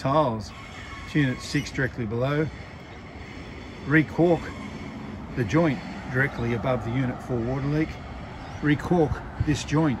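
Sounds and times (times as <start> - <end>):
outdoor background noise: 0.0 - 10.0
man speaking: 5.4 - 8.0.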